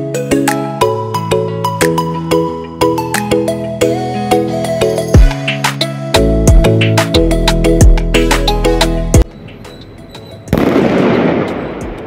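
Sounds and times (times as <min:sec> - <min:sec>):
firecracker burst: 0:10.5 - 0:12.0
firecrackers crackling: 0:10.5 - 0:12.0.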